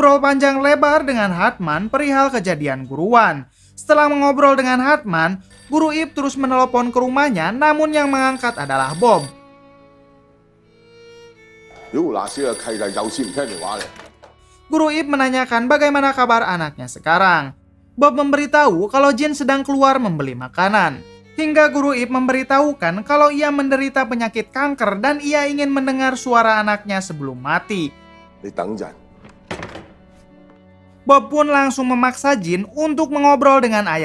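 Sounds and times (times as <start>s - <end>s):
soft background music: 0.0s - 34.0s
telephone bell ringing: 5.5s - 9.4s, 11.7s - 14.3s
sudden knock: 29.2s - 30.6s.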